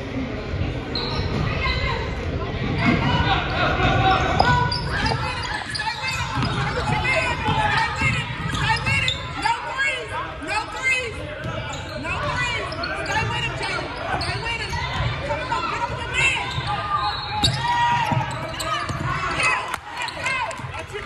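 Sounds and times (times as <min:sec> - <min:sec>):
chatter and calls: 0:00.6 - 0:21.0
sneakers squeaking on floor: 0:00.8 - 0:02.1, 0:04.2 - 0:09.6, 0:10.7 - 0:20.8
basketball bouncing: 0:06.2 - 0:09.0.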